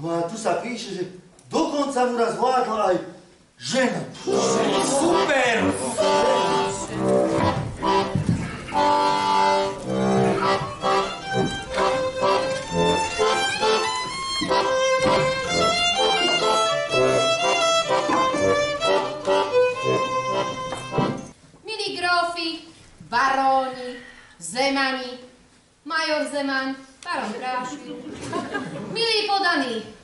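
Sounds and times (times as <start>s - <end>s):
violin playing a tune: 4.2s - 21.3s
accordion: 4.2s - 21.4s.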